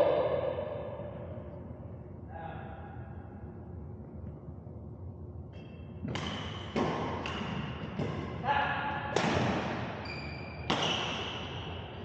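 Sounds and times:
rackets hitting shuttlecock: 5.5 - 8.4, 9.0 - 10.0, 10.6 - 11.6.

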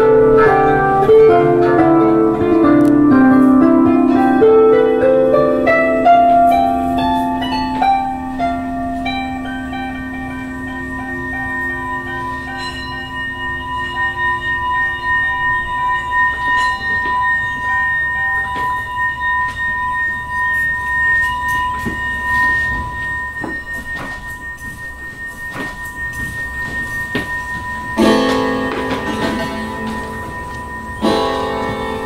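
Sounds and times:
plucked notes: 0.0 - 32.0
singing bowls ringing: 0.0 - 32.0.

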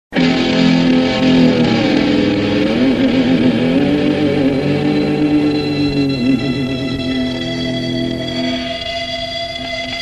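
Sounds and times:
distorted electric guitar chord: 0.1 - 10.0.

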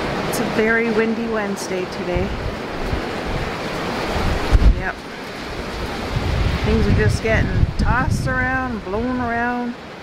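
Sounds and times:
gusty wind through bare trees: 0.0 - 10.0
wind buffeting microphone: 0.0 - 10.0.

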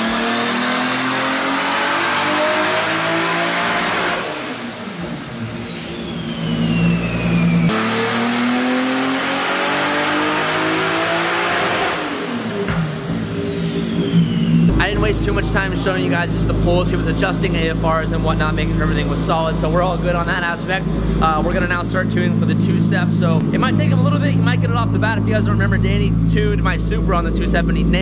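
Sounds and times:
turbocharged engine revving on dyno: 0.0 - 28.0.

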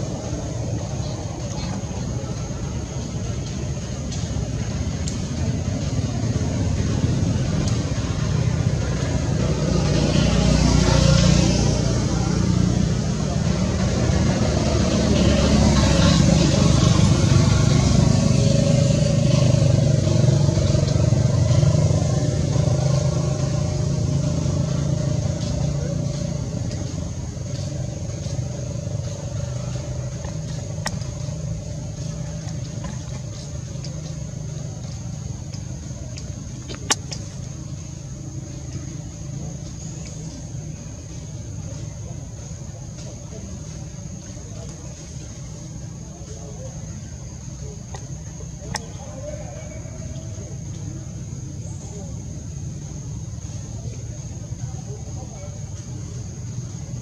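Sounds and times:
vehicle engines rumbling: 0.0 - 57.0.

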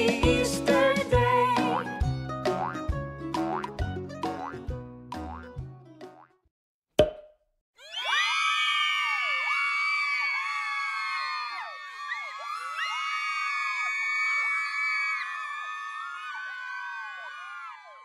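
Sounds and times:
cork popping from bottle: 7.0 - 7.4.

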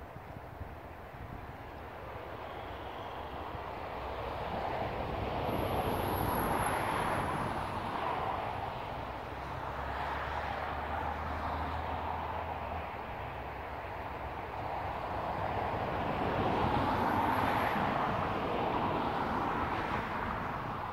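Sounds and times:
faint high whine: 2.1 - 4.2.

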